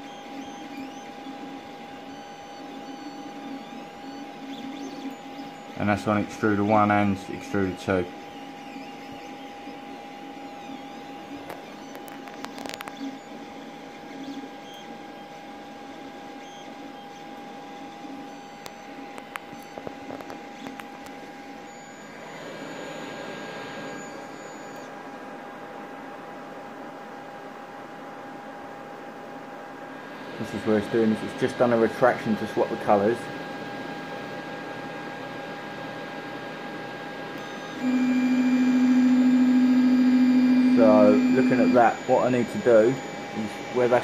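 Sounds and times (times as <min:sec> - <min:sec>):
three d printer motors whining: 0:00.0 - 0:25.2, 0:29.9 - 0:44.0.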